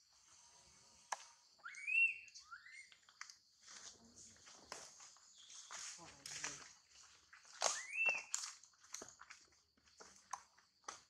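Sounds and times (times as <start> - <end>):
insects hissing: 0.0 - 2.9.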